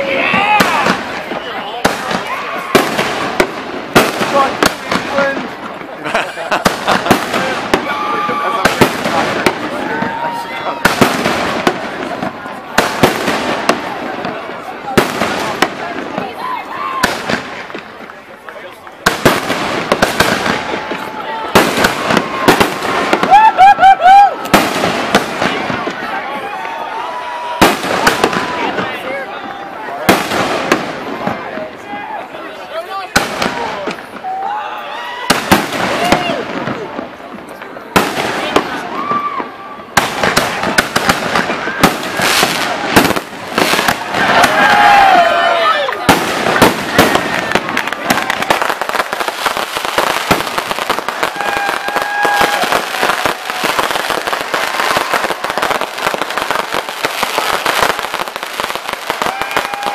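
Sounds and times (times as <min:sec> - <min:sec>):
fireworks bangs: 0:00.0 - 0:59.9.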